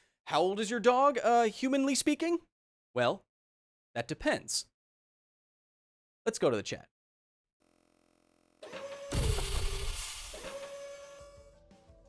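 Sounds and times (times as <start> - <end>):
transition swell and crash effect: 9.1 - 10.5.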